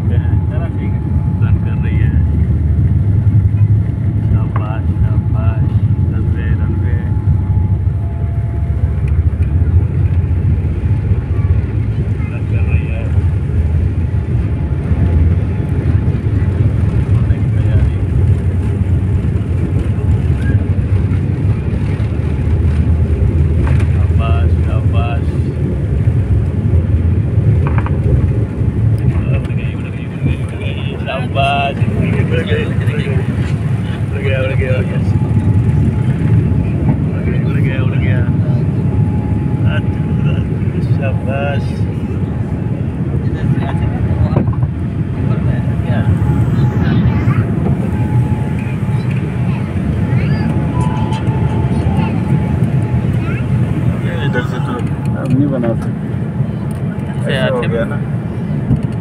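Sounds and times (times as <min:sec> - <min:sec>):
jet airliner taxiing rumble: 0:00.0 - 0:59.0.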